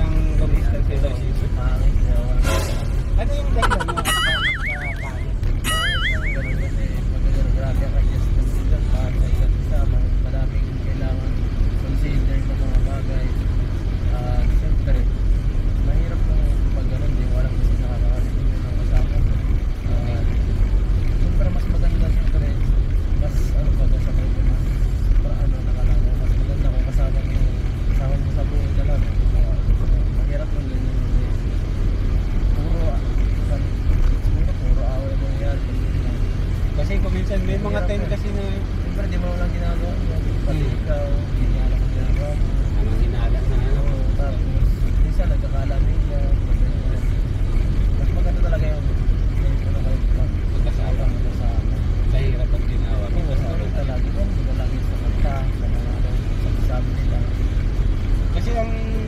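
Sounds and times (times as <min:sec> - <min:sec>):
car engine rumble from inside cabin: 0:00.0 - 0:59.0
men talking: 0:00.0 - 0:59.0.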